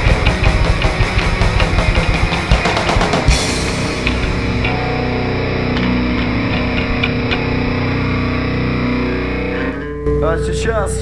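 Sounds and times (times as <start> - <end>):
drum hits: 0.0 - 8.2
distorted electric guitars: 0.0 - 11.0.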